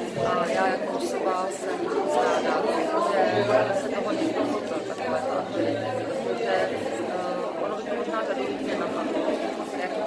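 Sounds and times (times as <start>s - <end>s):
many people talking: 0.0s - 10.0s.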